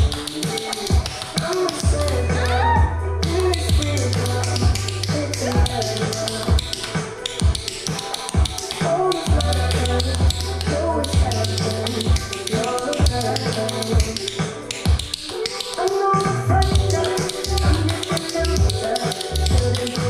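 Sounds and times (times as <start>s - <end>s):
pop song with steady beat: 0.0s - 20.0s
tap shoes on hard floor: 13.9s - 15.2s.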